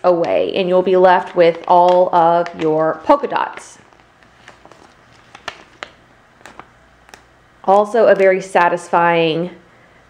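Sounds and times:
vinyl peeling with crackling ticks: 0.1 - 8.3.

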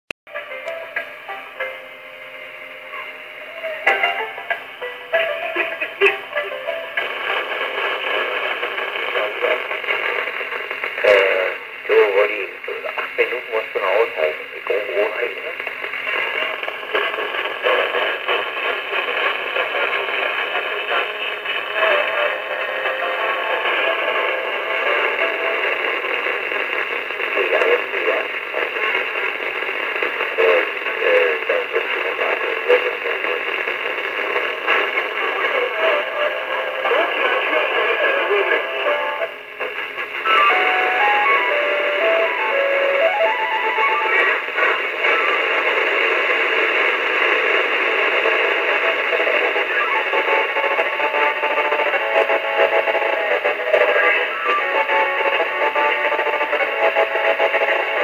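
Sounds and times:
music through radio speaker: 0.3 - 58.0
static hiss: 0.4 - 58.0.

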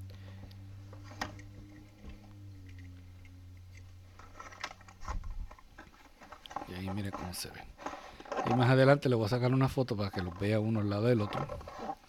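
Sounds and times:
steady low hum: 0.0 - 12.0
plastic packaging clicks and rustles: 3.7 - 12.0.

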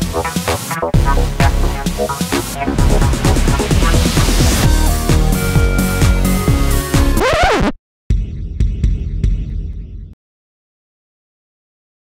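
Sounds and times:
low throbbing rumble: 1.0 - 5.7.

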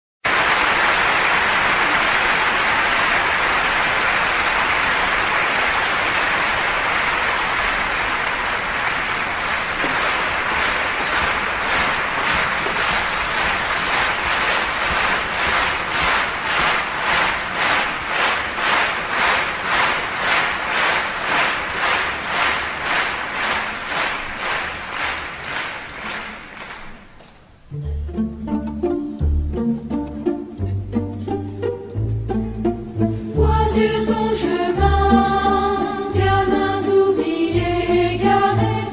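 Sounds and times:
audience applauding: 0.2 - 27.6
rhythmic clapping in unison: 0.2 - 27.6.

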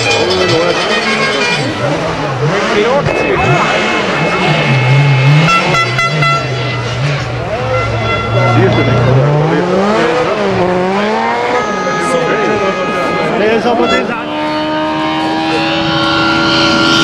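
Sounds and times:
rally car engine passing at speed: 0.0 - 17.0.

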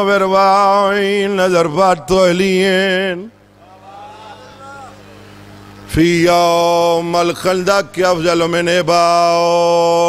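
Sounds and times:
man chanting amplified: 0.0 - 5.0, 5.9 - 10.0
steady low hum: 0.0 - 10.0
faint voices: 3.5 - 5.9.

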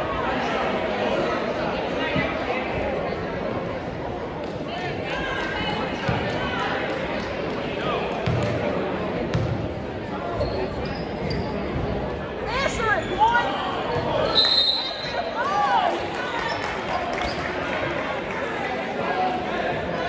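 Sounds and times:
hubbub of crowd voices: 0.0 - 20.0
basketball bouncing on court: 8.2 - 8.6, 9.3 - 9.6
shoe squeaks: 10.4 - 11.7.

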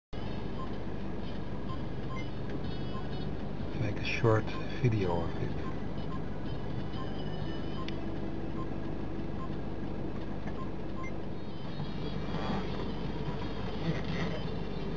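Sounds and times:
faint steady hum: 0.2 - 14.9.

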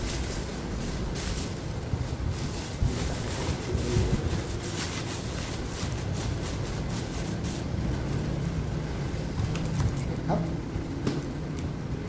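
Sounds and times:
bubble wrap and cardboard rustling: 0.0 - 10.3.

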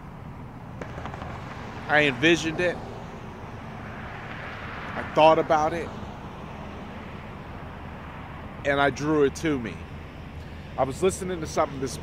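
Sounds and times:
distant engine rumble: 0.0 - 12.0.

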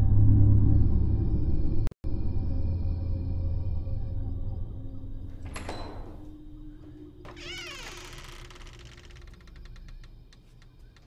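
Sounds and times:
low drone: 0.0 - 10.0
wavering creak: 5.4 - 11.0.

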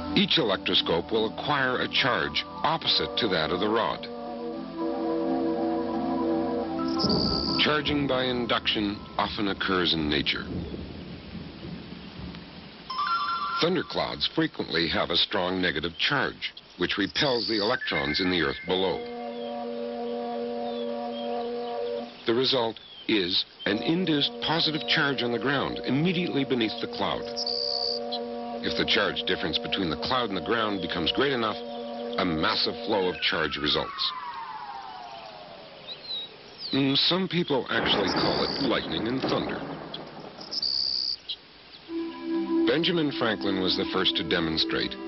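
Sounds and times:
cricket chirping: 6.8 - 9.2, 16.6 - 25.8, 26.9 - 28.7, 32.8 - 36.8, 37.8 - 42.2.

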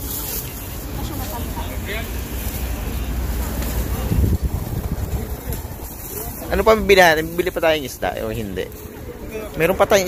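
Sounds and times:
faint voices: 0.0 - 10.0
wind buffeting microphone: 2.9 - 8.0.

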